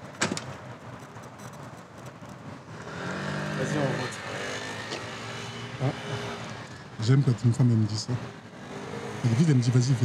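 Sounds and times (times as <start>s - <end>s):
man talking: 7.0s - 8.3s, 9.2s - 10.0s.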